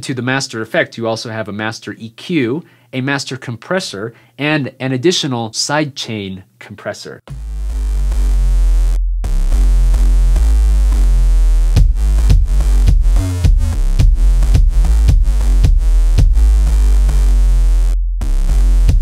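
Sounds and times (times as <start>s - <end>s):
electronic backing track with bass: 7.3s - 19.0s
kick drum hits: 11.8s - 16.4s.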